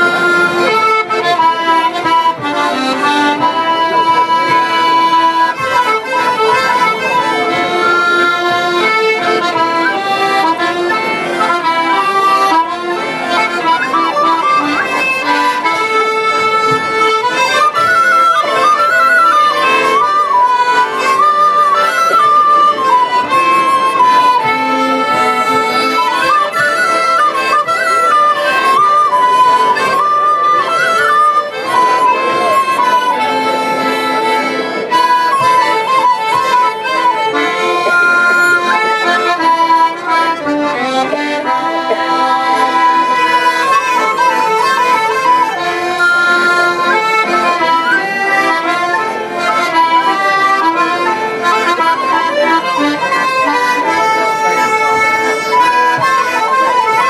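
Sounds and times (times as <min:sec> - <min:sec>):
accordion: 0:00.0 - 0:57.0
fiddle: 0:00.0 - 0:57.0.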